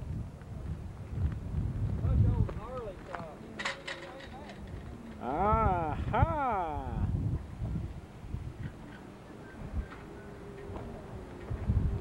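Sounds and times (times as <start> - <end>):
wind buffeting microphone: 0.0 - 12.0
people's voices: 2.1 - 7.1.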